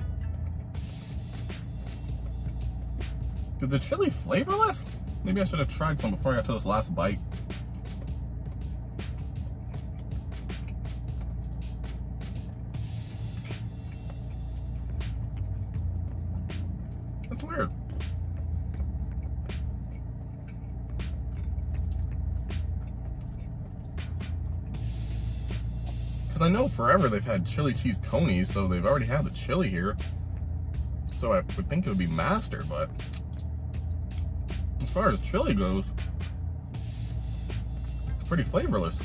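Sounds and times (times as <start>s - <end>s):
soft background music: 0.0s - 39.0s
chewing crunchy food: 7.2s - 26.3s.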